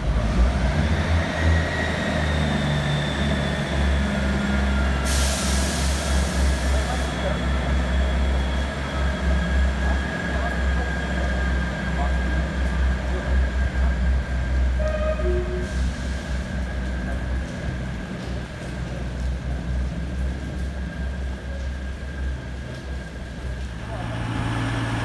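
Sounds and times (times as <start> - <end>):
air hiss: 5.0 - 6.9
diesel engines idling: 22.4 - 25.0.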